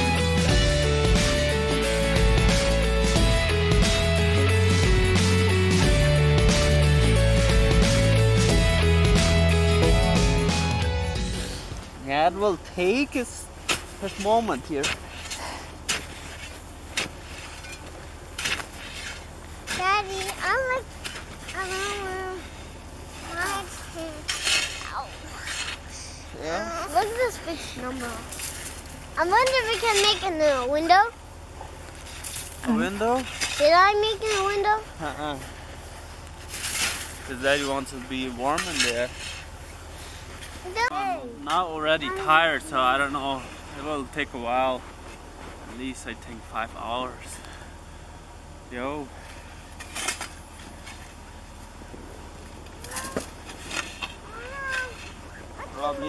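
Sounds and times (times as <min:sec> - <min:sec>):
shovel scraping packed snow: 0:13.7 - 0:22.4, 0:23.2 - 0:28.8, 0:36.4 - 0:40.6.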